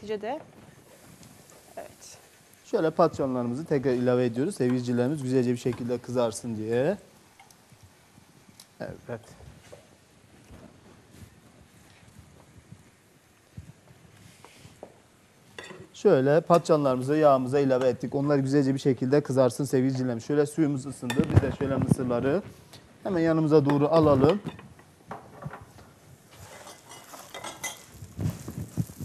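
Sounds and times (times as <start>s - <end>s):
eggplant frying in oil: 0.1s - 29.0s
spatula scraping a pan: 26.3s - 29.0s.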